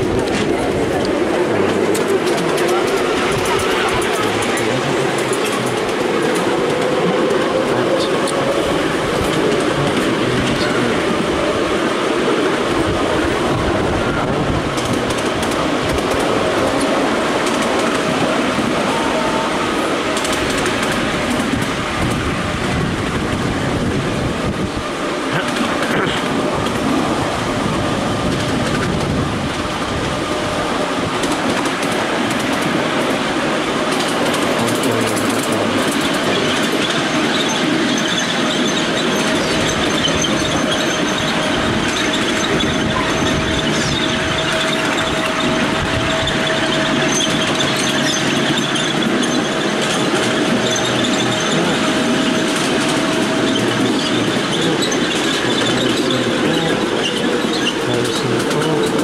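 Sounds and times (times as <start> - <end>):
train wheels clattering on rails: 0.0 - 59.0.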